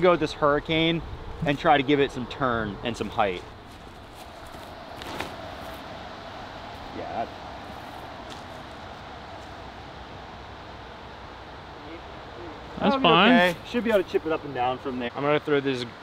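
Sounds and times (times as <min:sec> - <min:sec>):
wind rustling through trees: 0:00.0 - 0:16.0
person speaking: 0:12.7 - 0:14.1.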